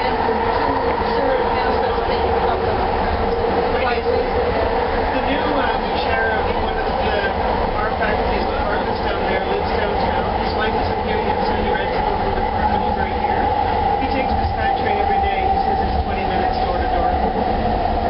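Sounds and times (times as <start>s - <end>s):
train running on track: 0.0s - 18.0s.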